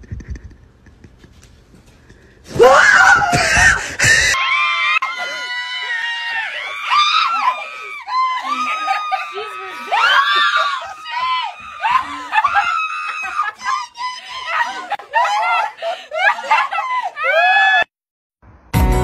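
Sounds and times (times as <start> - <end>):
loud distorted scream: 2.5 - 13.2.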